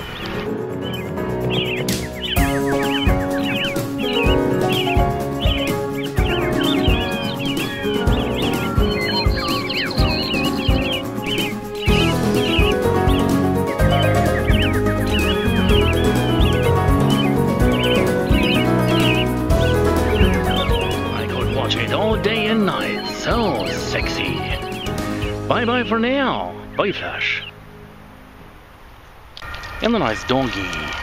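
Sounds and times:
background music with steady beat: 0.0 - 26.8
bird-like chirps: 0.0 - 27.6.

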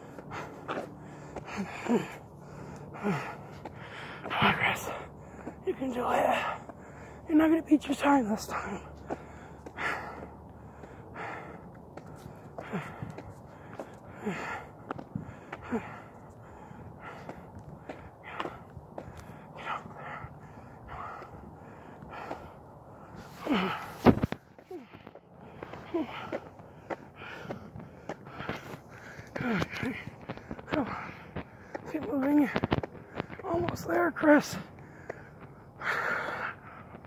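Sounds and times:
man breathing hard: 0.0 - 7.3, 8.5 - 32.0, 34.6 - 37.0.

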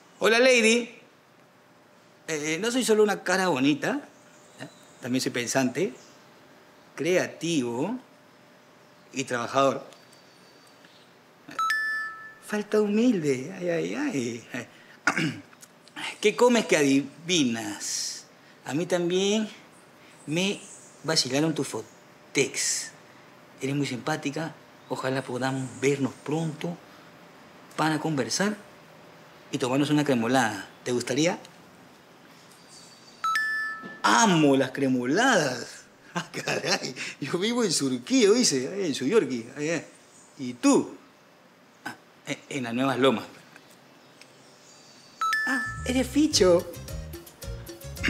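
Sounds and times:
two-note electronic message chime: 11.6 - 12.5, 33.2 - 34.1, 45.2 - 46.7.

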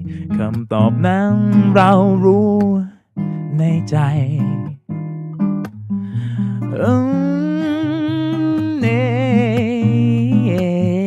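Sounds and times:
acoustic guitar: 0.0 - 11.0.

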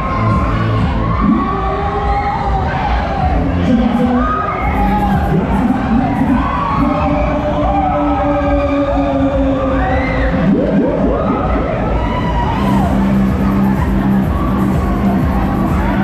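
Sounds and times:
fairground ride music: 0.0 - 16.0
riders cheering and shouting: 0.0 - 16.0
overlapping screams: 4.2 - 16.0.

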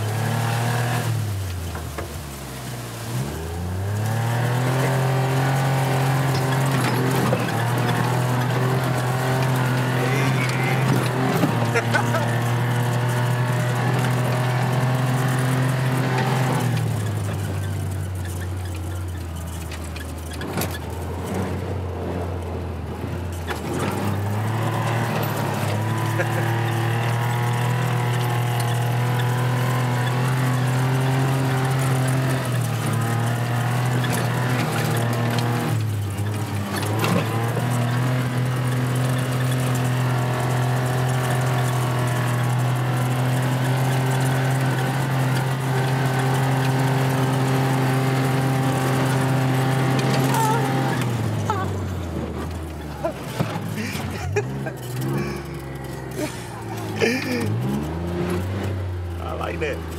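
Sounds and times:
utility vehicle engine running: 0.0 - 59.9.

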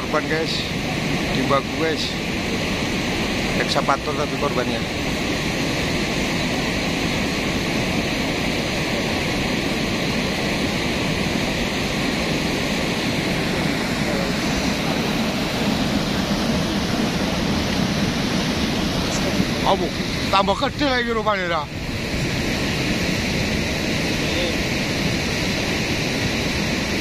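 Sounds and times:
mudflow rushing water: 0.0 - 27.0.

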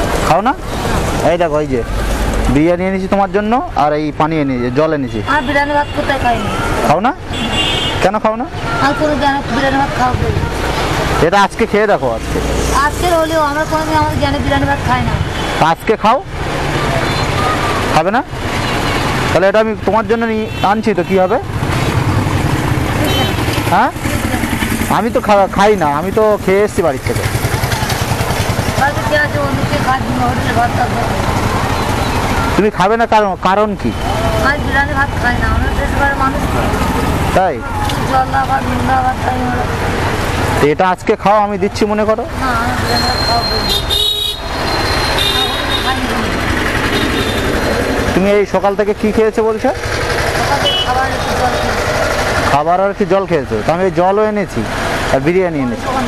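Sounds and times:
roadside traffic: 0.0 - 56.0
vehicle horns honking: 4.6 - 9.2, 15.2 - 15.8, 16.9 - 17.9, 20.1 - 21.5, 23.0 - 23.8, 42.9 - 47.9, 50.5 - 51.7
vehicle engine running: 8.6 - 15.6, 20.9 - 56.0.

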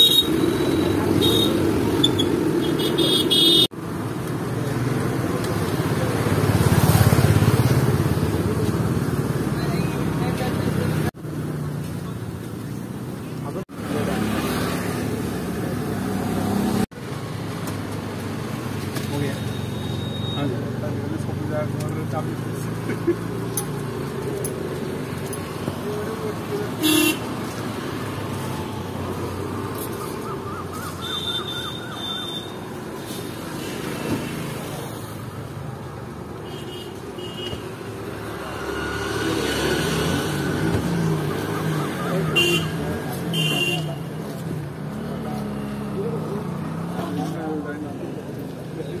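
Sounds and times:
traffic rumble: 0.0 - 49.0
vehicle horn toots: 26.8 - 27.3, 42.3 - 44.0.

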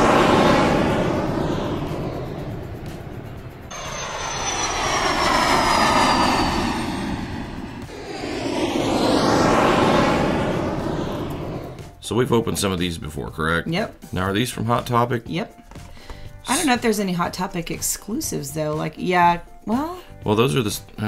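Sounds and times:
high whine falling in pitch: 0.0 - 11.8
jet airplane flyby: 0.0 - 12.8.

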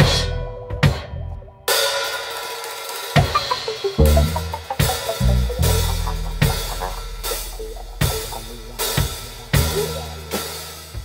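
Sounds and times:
cymbal ringing: 1.8 - 11.0
drum hit: 3.2 - 10.4
low bass note: 4.0 - 10.4.

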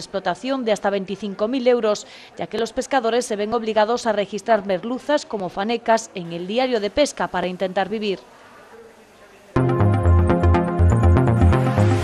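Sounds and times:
woman narrating: 0.0 - 8.3
electronic news jingle: 9.6 - 12.0.

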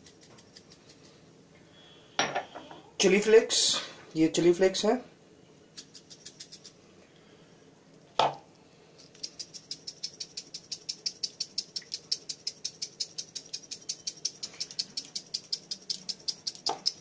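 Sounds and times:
chilli flakes rattling in jar: 0.0 - 1.2, 5.8 - 6.8, 9.0 - 17.0.

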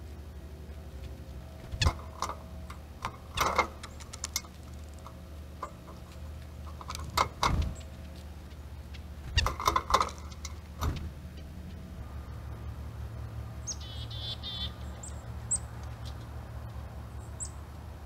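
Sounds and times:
songbirds chirping: 0.0 - 18.0.

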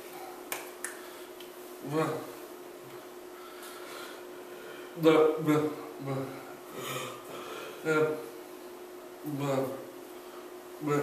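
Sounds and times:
faint steady hum: 0.0 - 11.0
hands clapping together: 0.5 - 1.5
person grunting: 5.4 - 8.3.

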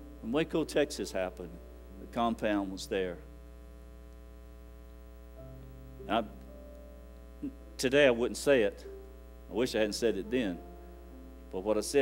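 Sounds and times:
electrical mains hum: 0.0 - 12.0
man speaking: 0.2 - 3.3, 6.1 - 6.4, 7.4 - 8.9, 9.5 - 10.6, 11.5 - 12.0.

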